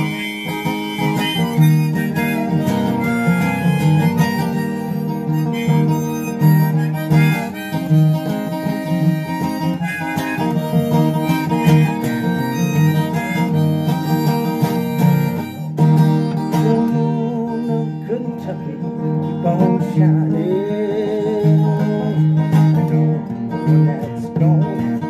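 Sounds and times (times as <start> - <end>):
acoustic guitar accompaniment: 0.0 - 25.0
harmonica playing: 0.0 - 25.0.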